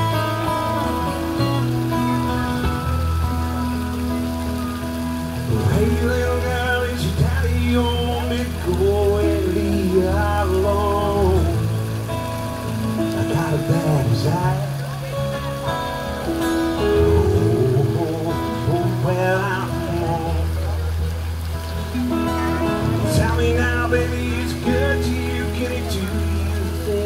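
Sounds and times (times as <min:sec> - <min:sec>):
faint patter of falling water: 0:00.0 - 0:27.0
person singing melody: 0:00.0 - 0:27.0
sustained bass notes: 0:00.0 - 0:27.0.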